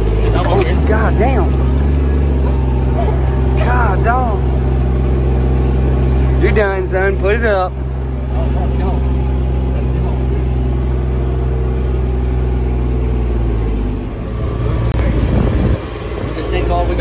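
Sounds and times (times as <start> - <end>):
diesel engine running: 0.0 - 17.0.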